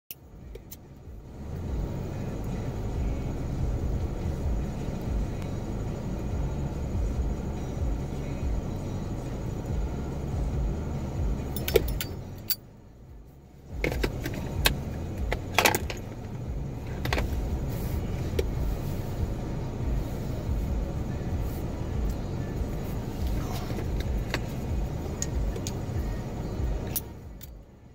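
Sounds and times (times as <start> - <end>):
car cabin rumble: 0.1 - 27.9
small metallic rattles: 11.5 - 12.7, 13.7 - 17.6.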